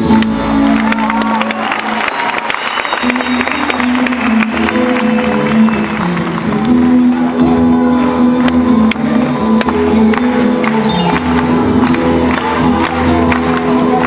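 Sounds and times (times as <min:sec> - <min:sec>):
plucked-string ensemble playing: 0:03.1 - 0:14.0.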